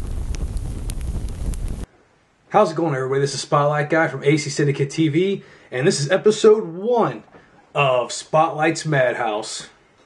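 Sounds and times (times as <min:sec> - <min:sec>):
whooshing wind-like effect: 0:00.0 - 0:01.9.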